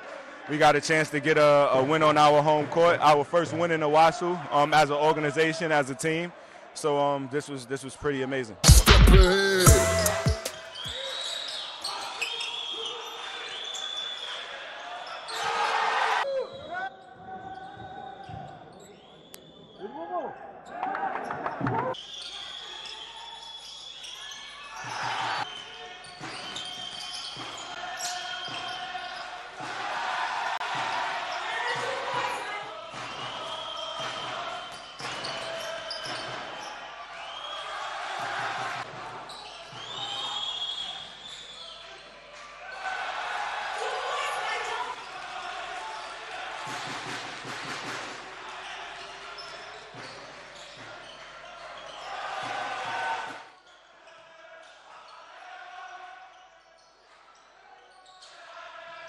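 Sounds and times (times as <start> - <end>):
indistinct voices: 8.6 - 11.0
sneakers squeaking: 8.6 - 29.5, 31.1 - 43.0, 48.6 - 52.8, 56.3 - 58.4.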